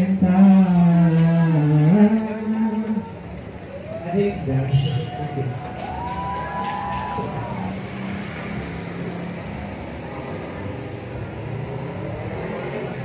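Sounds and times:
motorbike engines running: 0.0 - 13.0
street traffic noise: 0.0 - 13.0.

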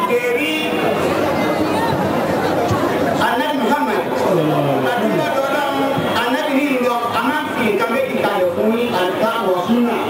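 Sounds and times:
man speaking into a microphone: 0.0 - 0.8, 3.2 - 10.0
crowd chatter: 0.0 - 10.0.

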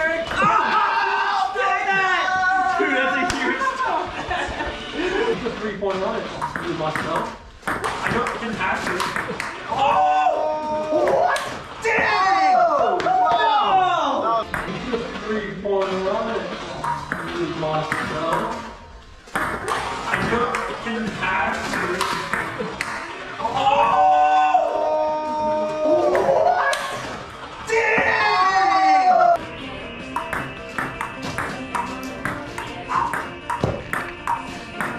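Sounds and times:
music: 0.0 - 34.9.

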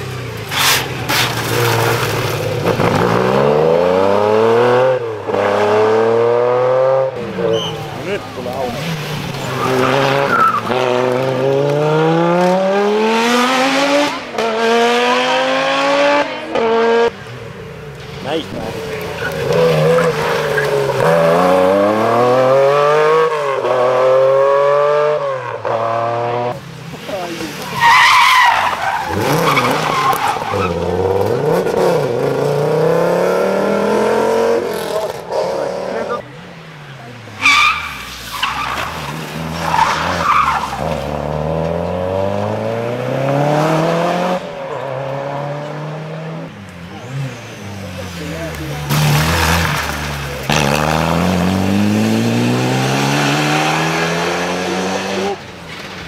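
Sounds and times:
rally car engines revving: 0.0 - 56.0
tyres skidding on tarmac: 0.0 - 56.0.

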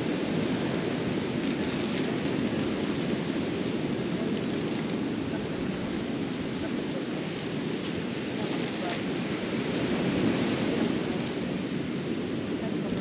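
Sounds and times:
ocean surf rushing: 0.0 - 13.0
wind on microphone: 0.0 - 13.0.

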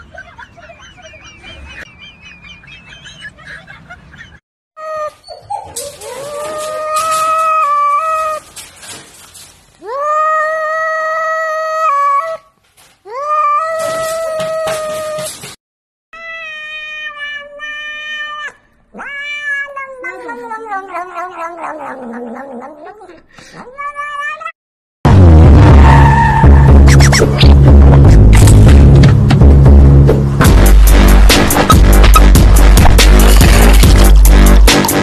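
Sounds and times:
cat meowing: 16.2 - 24.6.

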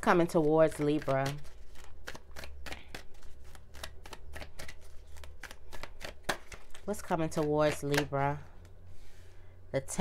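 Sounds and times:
cards being shuffled: 0.3 - 8.8.

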